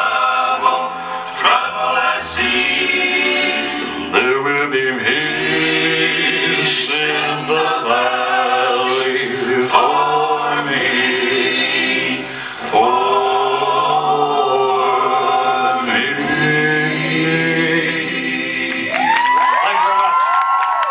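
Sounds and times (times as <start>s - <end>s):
choir singing gospel song: 0.0s - 19.4s.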